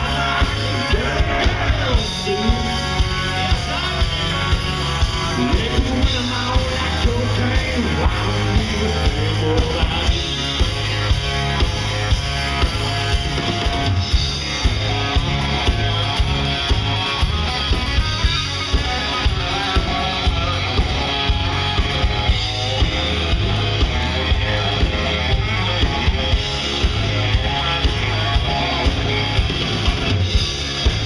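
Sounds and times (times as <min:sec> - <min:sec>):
live country band playing: 0:00.0 - 0:31.0.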